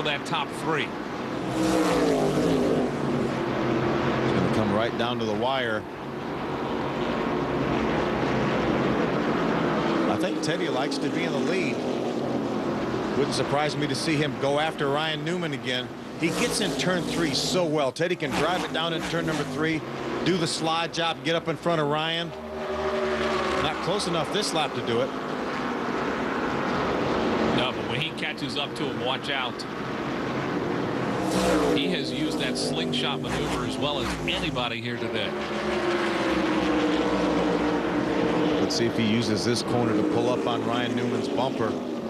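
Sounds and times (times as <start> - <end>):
race car engines roaring: 0.0 - 42.0.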